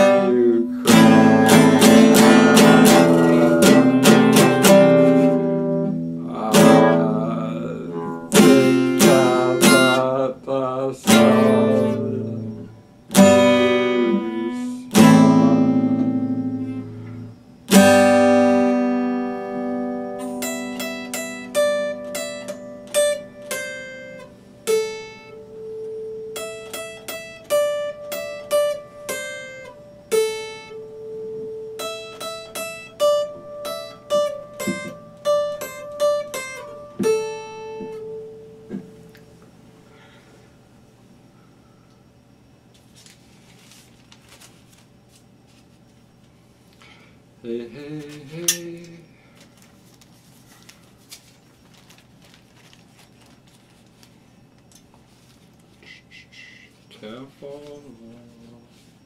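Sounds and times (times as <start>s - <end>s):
acoustic guitar playing: 0.0s - 39.8s.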